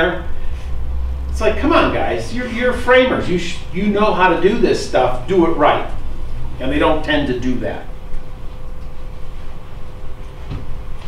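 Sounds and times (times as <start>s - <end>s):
faint constant hum: 0.0s - 11.0s
low room rumble: 0.0s - 11.0s.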